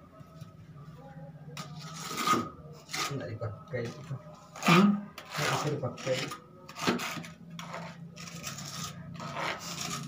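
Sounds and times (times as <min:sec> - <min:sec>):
hand tool scraping cement and tile: 0:01.6 - 0:03.2, 0:04.6 - 0:10.0.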